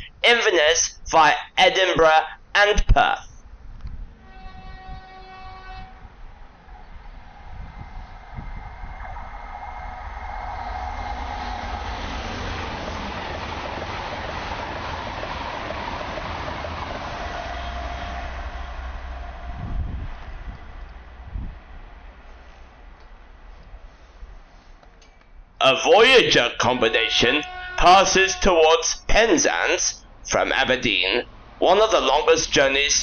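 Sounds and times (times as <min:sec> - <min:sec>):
high-speed train rushing past: 0:04.1 - 0:24.8, 0:25.4 - 0:33.0
train horn blast: 0:04.2 - 0:14.3, 0:16.7 - 0:22.7, 0:26.8 - 0:28.5.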